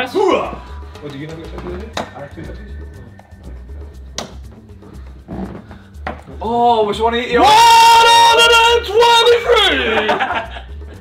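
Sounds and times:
background music with bass beat: 0.0 - 11.0
darts hitting dartboard: 4.2 - 4.4, 5.5 - 6.2.

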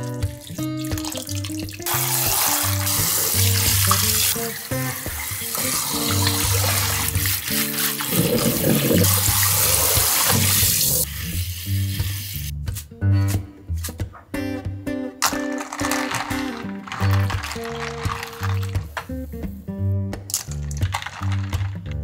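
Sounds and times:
faucet spraying water into sink: 0.0 - 12.5
greens rinsed by hand: 0.0 - 12.5, 15.6 - 19.1
background music: 0.0 - 22.0.

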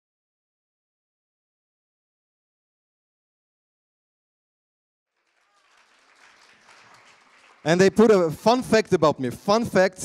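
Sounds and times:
audience applause: 5.1 - 8.3.

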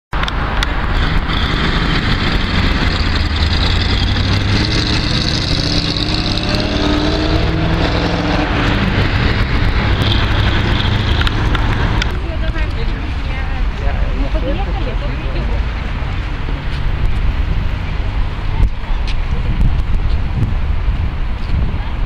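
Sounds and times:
road traffic passing: 0.1 - 22.0.

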